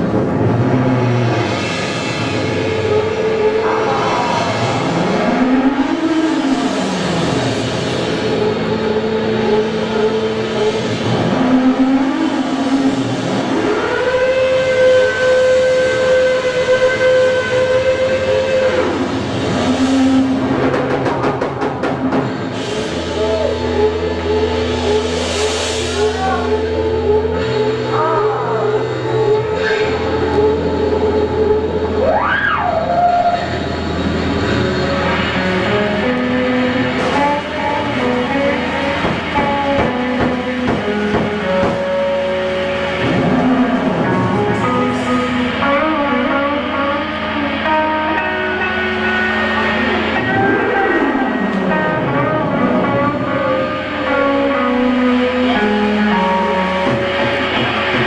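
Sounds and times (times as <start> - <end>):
electric guitar sustained notes: 0.0 - 58.0.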